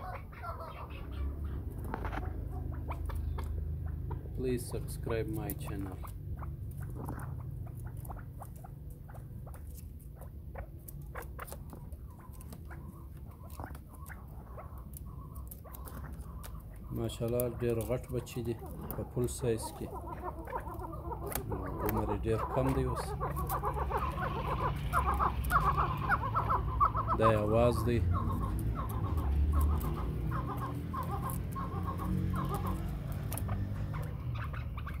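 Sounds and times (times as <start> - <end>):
birds squeaking: 0.0 - 35.0
birds tapping and scratching: 0.0 - 35.0
partridges calling: 0.0 - 35.0.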